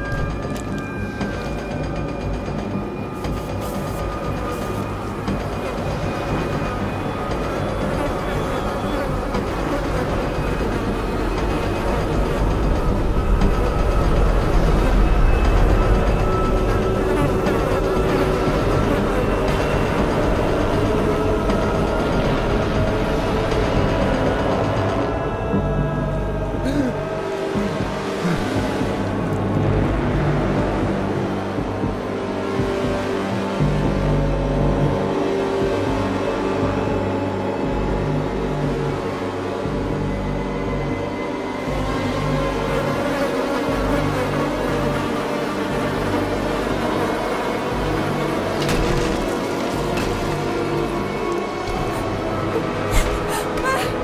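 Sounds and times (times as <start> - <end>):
dark music with held tones: 0.0 - 54.0
swarm of insects buzzing: 41.6 - 53.0.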